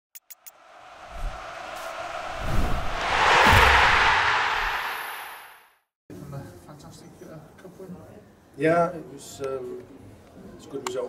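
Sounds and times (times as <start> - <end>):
whooshing swell: 0.5 - 5.7
deep booms: 0.8 - 5.6.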